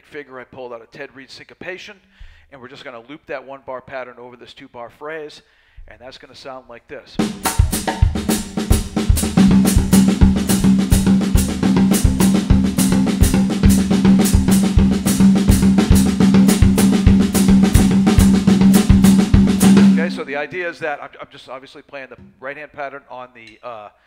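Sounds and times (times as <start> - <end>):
drum kit playing: 7.2 - 20.4.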